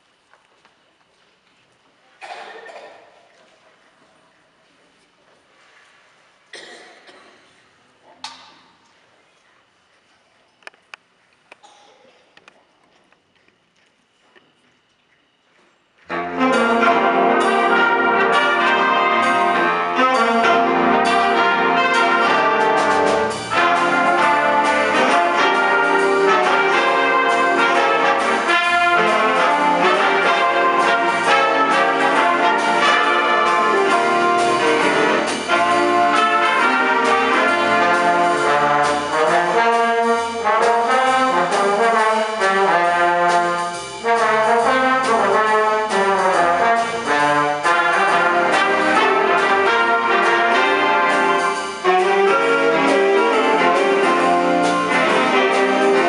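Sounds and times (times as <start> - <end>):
jazz big band playing: 16.1 - 56.0.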